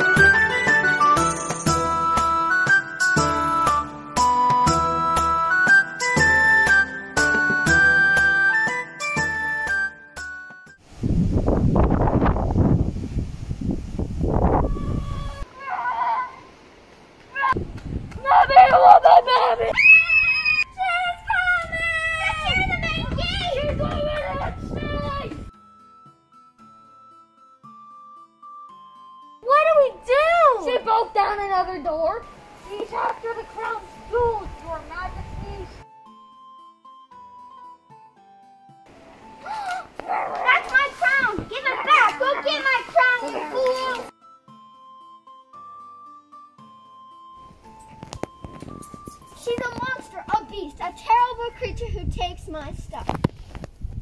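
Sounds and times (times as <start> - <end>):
children yelling and screaming: 14.6 - 16.5, 18.2 - 25.4, 39.5 - 44.1
shrill high-pitched scream: 19.7 - 20.8.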